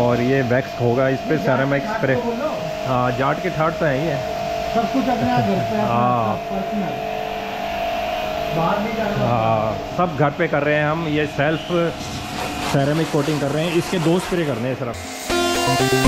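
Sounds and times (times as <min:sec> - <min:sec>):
man talking: 0:00.0 - 0:07.0, 0:08.5 - 0:12.0, 0:12.7 - 0:15.0
pressure washer motor whine: 0:00.0 - 0:16.0
water spray jetting: 0:10.7 - 0:16.0.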